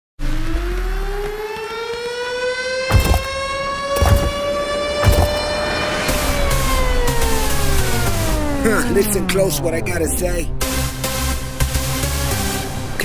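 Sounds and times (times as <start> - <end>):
siren-like rising tone: 0.2 - 8.6
deep thumps: 2.9 - 4.4, 5.0 - 5.5.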